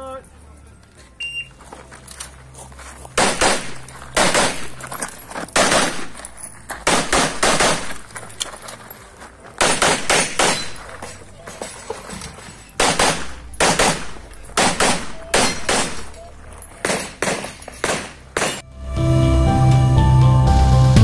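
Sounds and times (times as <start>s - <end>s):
pistol shots in rapid strings: 3.2s - 4.8s, 5.6s - 6.1s, 6.9s - 8.0s, 9.6s - 10.7s, 12.8s - 16.1s.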